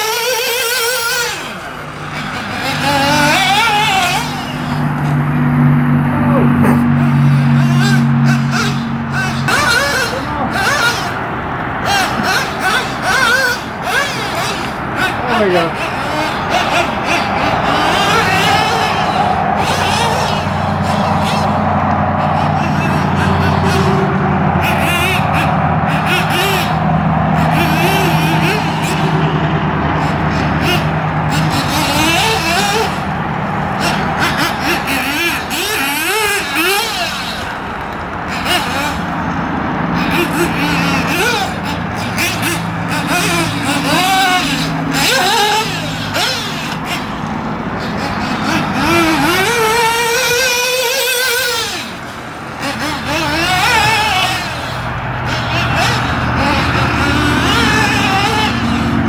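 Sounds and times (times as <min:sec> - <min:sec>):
model car engine revving: 0:00.0 - 0:59.0.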